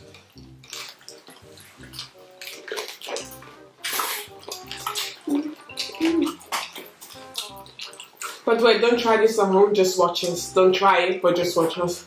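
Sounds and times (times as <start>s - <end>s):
wet chewing and crunching: 0.0s - 9.0s
background music: 0.0s - 12.0s.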